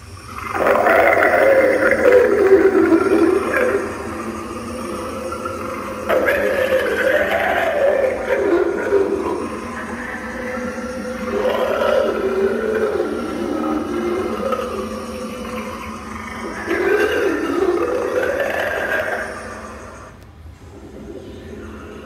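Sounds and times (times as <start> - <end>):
eerie music: 0.0 - 22.0
zombie groans and growls: 0.3 - 22.0.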